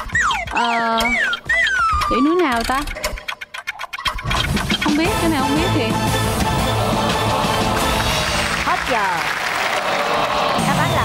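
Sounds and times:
countdown clock ticking: 0.0s - 8.3s
background music: 0.0s - 11.0s.

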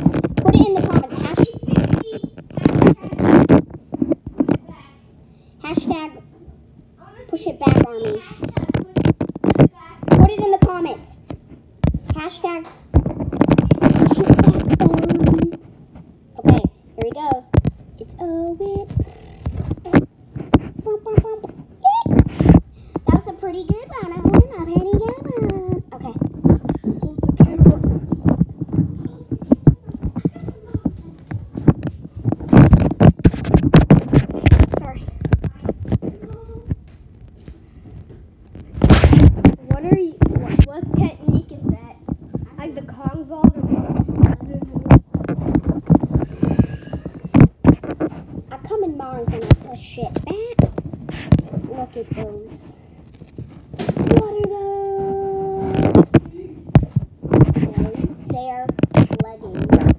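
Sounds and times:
children talking and calling out: 0.3s - 3.6s, 7.0s - 11.3s, 12.1s - 15.7s, 20.8s - 32.0s, 34.2s - 36.8s, 39.4s - 47.5s
loud rough noise: 37.8s - 59.9s.

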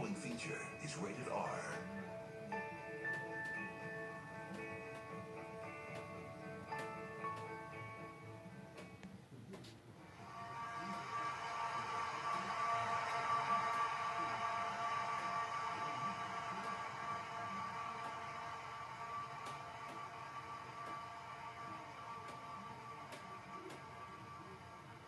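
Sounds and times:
sustained soundtrack drone: 10.0s - 25.0s.

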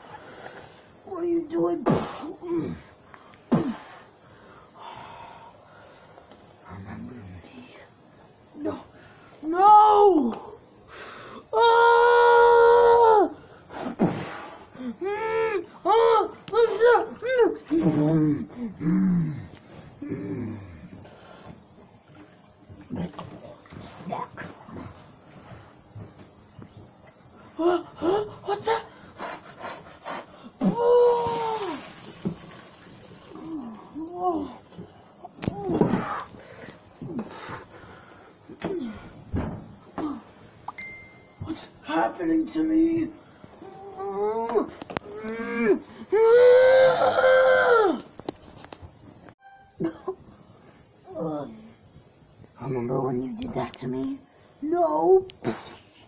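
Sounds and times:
person crying out: 11.5s - 13.4s, 30.6s - 32.0s, 43.6s - 48.0s
faint high chirp: 40.7s - 41.5s.

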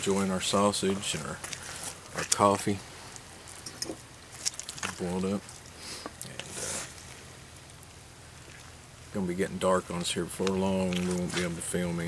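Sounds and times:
soft rustling: 0.0s - 9.2s, 9.9s - 12.0s.

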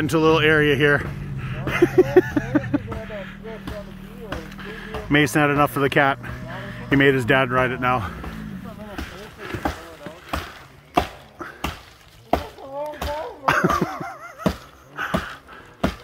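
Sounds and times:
distant voices: 0.0s - 16.0s
axe chopping into tree trunk: 8.9s - 13.3s, 14.4s - 16.0s.

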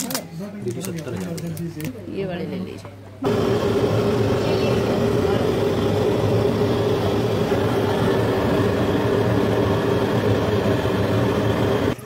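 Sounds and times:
blowtorch flame rushing: 3.2s - 12.0s
steady hum: 3.2s - 12.0s.

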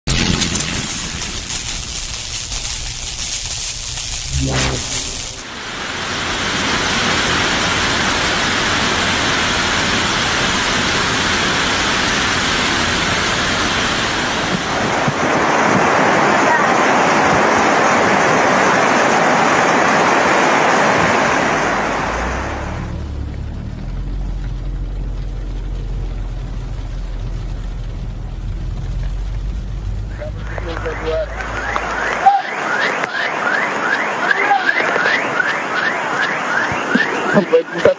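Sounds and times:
strong hiss: 0.1s - 6.2s
pulsing low rumble: 0.2s - 5.5s, 21.7s - 32.0s
steady rushing noise: 0.2s - 6.3s
rushing floodwater: 5.8s - 37.9s.

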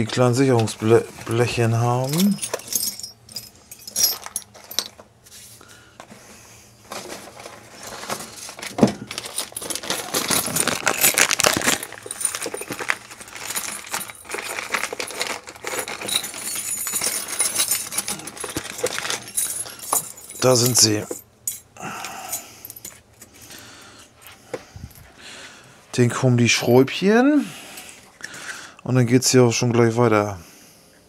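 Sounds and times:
small metal parts clinking: 0.6s - 5.1s, 7.0s - 23.6s.

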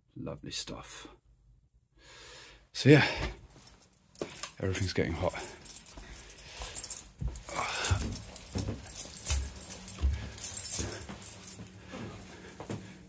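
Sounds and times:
keys jangling: 3.4s - 13.0s
footsteps on carpet: 5.4s - 13.0s.

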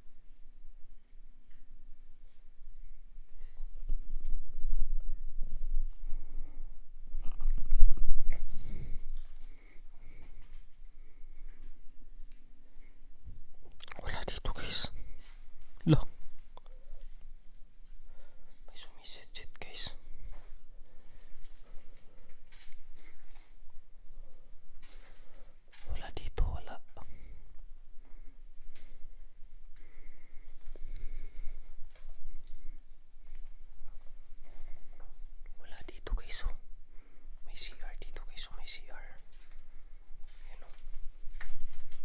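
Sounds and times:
person whispering: 7.1s - 7.8s, 13.8s - 15.0s, 15.8s - 16.2s, 18.7s - 20.1s, 25.8s - 27.3s, 35.6s - 36.6s, 37.4s - 39.3s.

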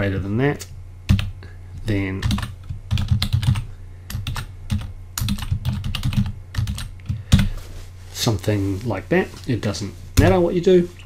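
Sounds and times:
keyboard typing: 2.2s - 7.5s.

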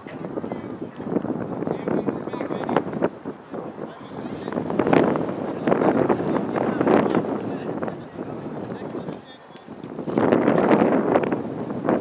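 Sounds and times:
wind gusting on microphone: 0.0s - 12.0s.

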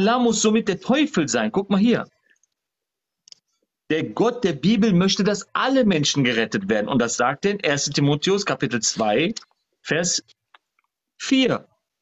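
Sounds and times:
man speaking: 0.0s - 2.2s, 3.8s - 10.4s, 11.2s - 12.0s.

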